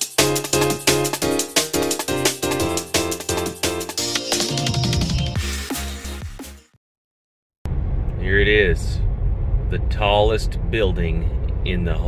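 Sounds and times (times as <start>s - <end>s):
road and tyre noise in car: 7.7s - 12.0s.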